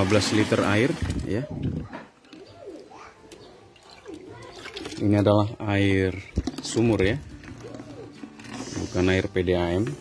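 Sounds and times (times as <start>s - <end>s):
water splashing and sloshing: 0.0s - 8.7s
hands squeezing wet pulp in water: 2.3s - 10.0s.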